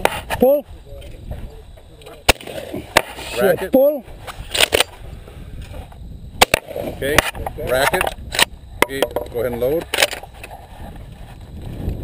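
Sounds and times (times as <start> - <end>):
shotgun firing: 2.3 - 3.2, 6.4 - 7.3.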